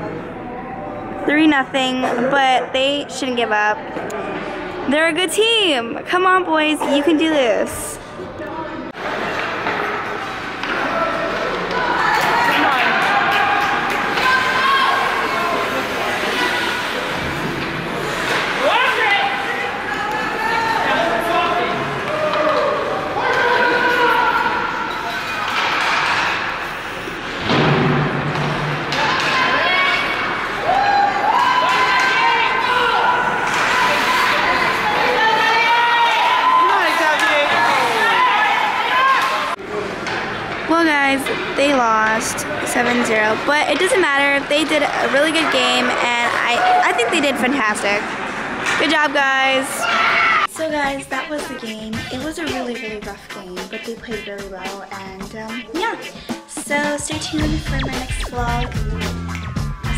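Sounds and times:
spectators calling and shouting: 0.0s - 59.9s
pucks and players hitting boards: 9.1s - 16.0s, 21.9s - 23.8s, 24.9s - 30.3s, 33.2s - 35.1s, 39.2s - 41.6s, 48.0s - 49.0s.

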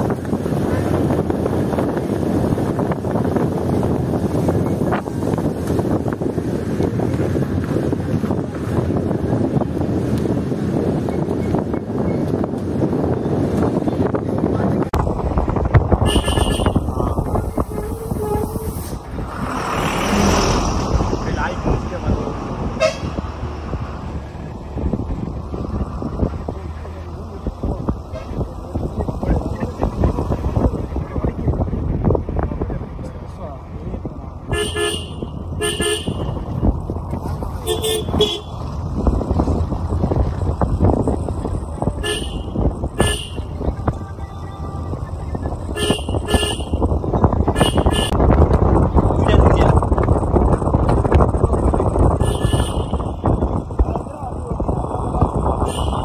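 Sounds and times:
car engine and road rumble: 0.0s - 56.0s
car horn toot: 16.0s - 18.7s, 22.8s - 23.2s, 34.5s - 36.4s, 37.6s - 38.6s, 42.0s - 46.9s, 47.5s - 48.2s, 52.2s - 53.4s, 55.6s - 56.0s.

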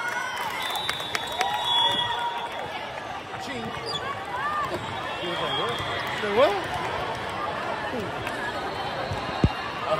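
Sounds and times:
crowd noise: 0.0s - 9.9s.

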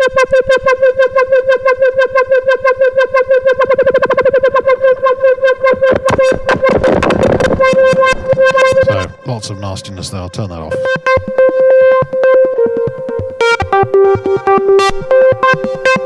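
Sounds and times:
synthesizer note pulsing: 0.0s - 16.0s.

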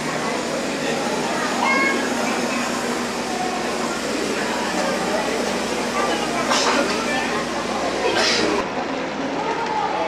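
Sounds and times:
escalator humming: 0.0s - 8.6s
murmur of a crowd: 0.0s - 10.0s.

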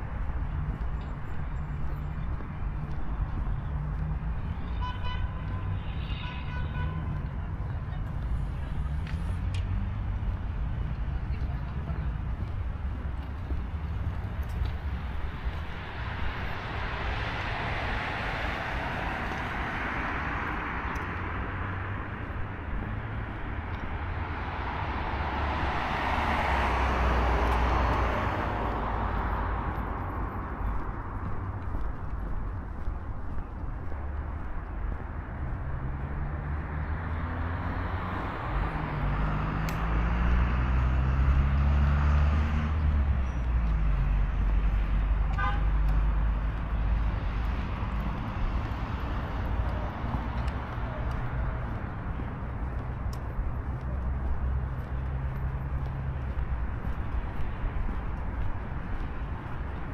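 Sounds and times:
cars passing: 0.0s - 59.9s
vehicle engine accelerating: 35.4s - 58.4s.

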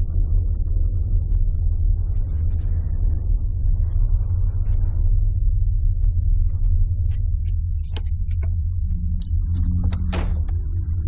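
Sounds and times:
deep low rumble drone: 0.0s - 11.0s.

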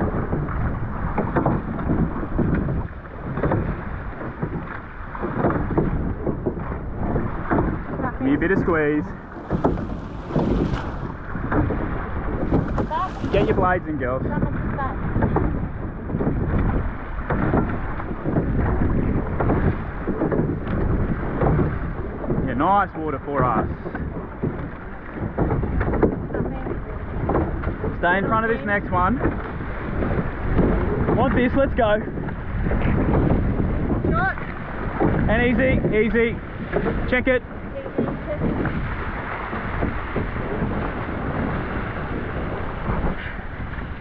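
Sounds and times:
oars splashing: 0.0s - 44.0s
rushing sea water: 0.0s - 44.0s
wind on microphone: 0.0s - 44.0s.

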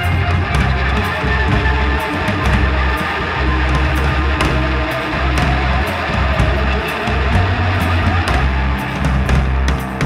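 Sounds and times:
bass notes: 0.0s - 10.0s
distorted electric guitar: 0.0s - 10.0s
drum kit with cymbal hits: 0.0s - 10.0s.

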